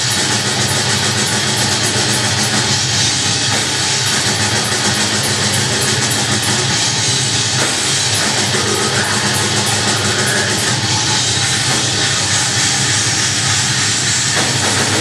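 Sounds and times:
bass guitar: 0.0s - 15.0s
drum kit: 0.0s - 15.0s
electric guitars: 0.0s - 15.0s.

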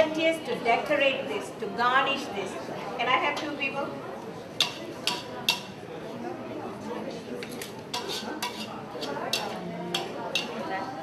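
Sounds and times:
metal spatula scraping a wok: 7.9s - 10.6s.

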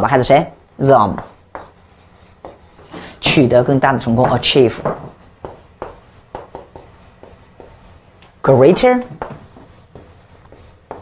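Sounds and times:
chalk writing on blackboard: 1.2s - 3.0s, 4.8s - 8.0s, 9.2s - 11.0s.

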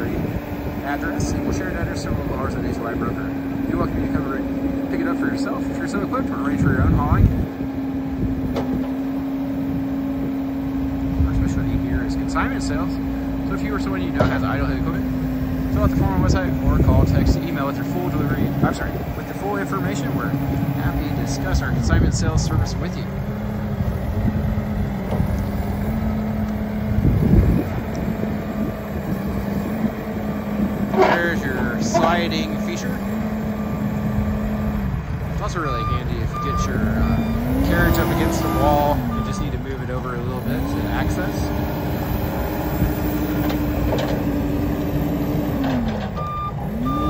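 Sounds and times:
diesel engine running: 0.0s - 47.0s
reversing alarm beeps: 35.6s - 39.5s, 46.2s - 47.0s.

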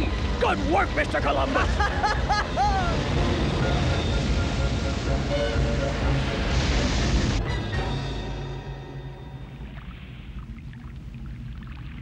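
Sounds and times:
background music: 0.0s - 10.0s
rain: 1.7s - 12.0s
spray-like surge: 4.2s - 7.8s.

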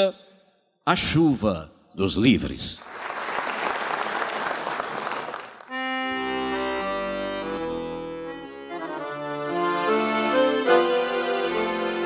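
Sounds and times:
audience applause: 2.8s - 5.7s
accordion playing held chords: 5.7s - 12.0s.

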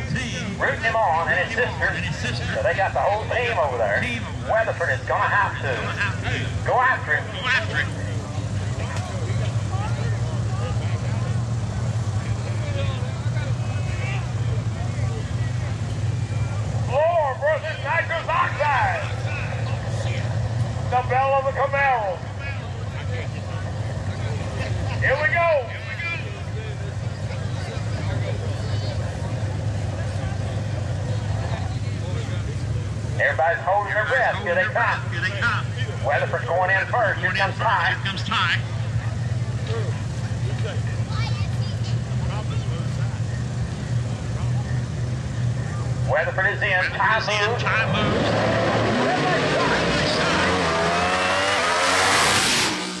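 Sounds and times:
announcer speaking: 0.0s - 8.0s, 16.8s - 23.4s, 24.7s - 26.6s, 33.2s - 38.7s, 45.9s - 51.8s
race car engines idling: 0.0s - 53.0s.

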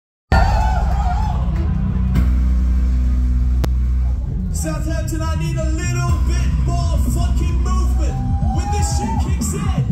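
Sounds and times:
distorted amplified bass drone: 0.3s - 9.9s.

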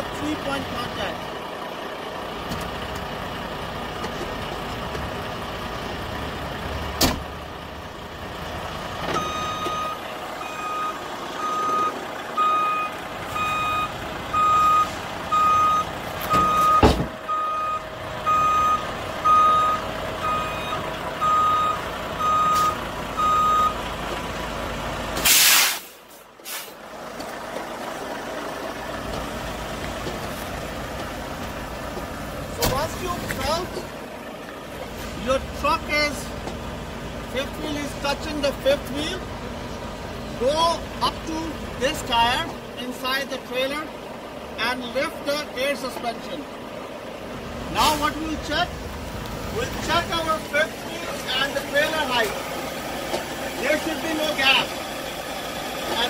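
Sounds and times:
diesel engine running: 0.0s - 56.0s
door thump: 7.0s - 7.2s, 16.4s - 17.2s
reversing alarm beeping: 9.2s - 23.8s
air brake hiss: 25.2s - 26.8s.

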